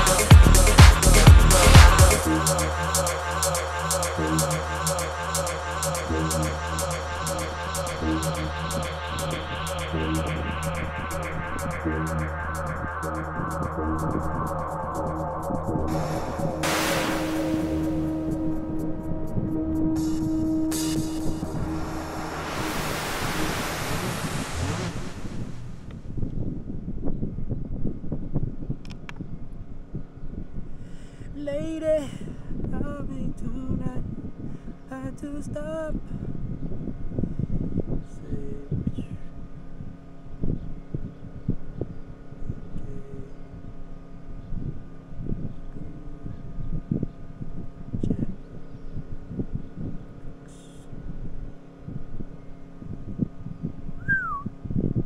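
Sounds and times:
house music: 0:00.0 - 0:25.9
wavering voice-like sounds: 0:00.0 - 0:25.9
noise sweep effect: 0:00.0 - 0:26.1
wind rumbling on microphone: 0:15.9 - 0:30.8, 0:44.4 - 0:55.0.

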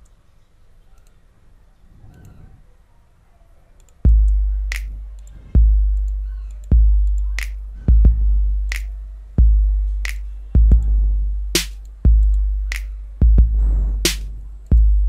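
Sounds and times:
finger snap samples: 0:03.8 - 0:07.8, 0:08.7 - 0:09.1, 0:10.0 - 0:10.5, 0:11.6 - 0:13.2, 0:14.1 - 0:14.9
deep kick drum hits: 0:07.9 - 0:08.4, 0:09.4 - 0:09.7, 0:10.6 - 0:11.1, 0:13.2 - 0:13.9.

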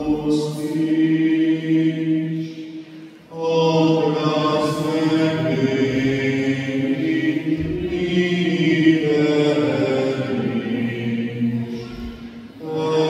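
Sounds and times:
group singing sacred chant: 0:00.0 - 0:13.0.

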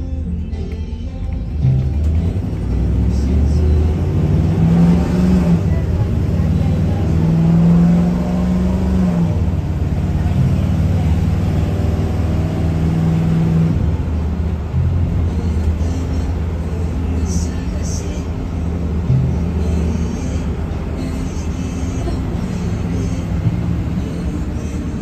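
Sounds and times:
bus engine: 0:00.0 - 0:25.0
road noise: 0:00.0 - 0:25.0.

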